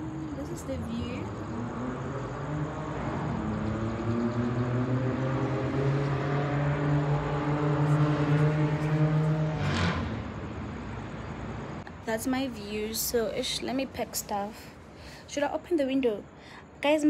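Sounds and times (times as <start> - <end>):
heavy vehicle engine droning: 0.0 - 11.8.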